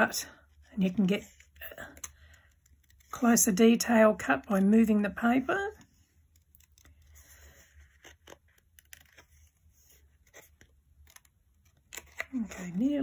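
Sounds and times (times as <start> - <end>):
paper rustling: 6.4 - 13.0
small scissors snipping paper: 7.9 - 9.3.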